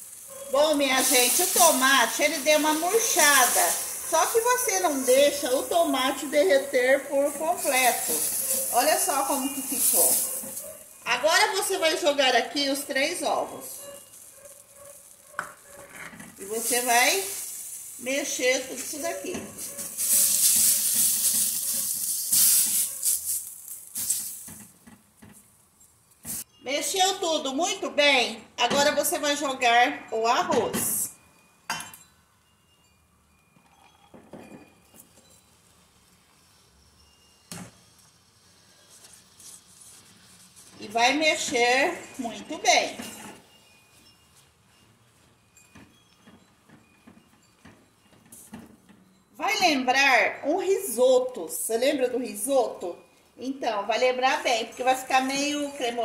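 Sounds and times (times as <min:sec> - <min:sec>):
spatula stirring in pot: 0:00.0 - 0:11.0, 0:38.6 - 0:41.8
food frying in oil: 0:00.0 - 0:11.8, 0:16.3 - 0:24.8.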